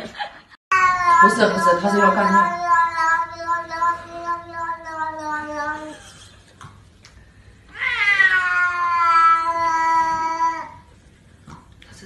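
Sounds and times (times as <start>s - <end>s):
cat yowling: 7.7s - 10.8s.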